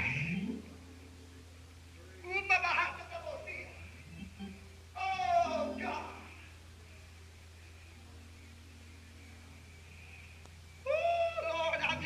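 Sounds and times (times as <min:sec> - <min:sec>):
faint hiss: 0:00.0 - 0:12.0
steady low hum: 0:00.0 - 0:12.0.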